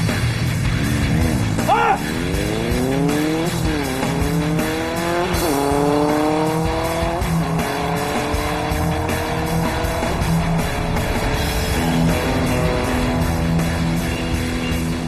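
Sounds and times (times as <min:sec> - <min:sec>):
motorcycle engine accelerating: 0:00.0 - 0:15.0.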